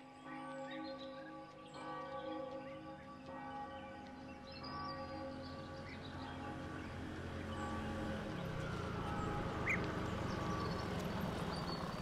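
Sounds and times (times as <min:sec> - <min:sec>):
bells ringing: 0:00.0 - 0:12.0.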